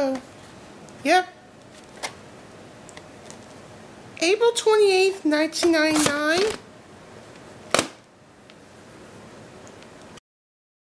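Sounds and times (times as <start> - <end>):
faint room hiss: 0.0 - 10.2.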